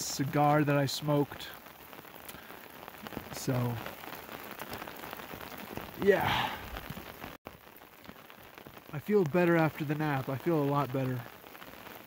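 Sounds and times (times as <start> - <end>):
rain falling on an umbrella: 0.0 - 12.0.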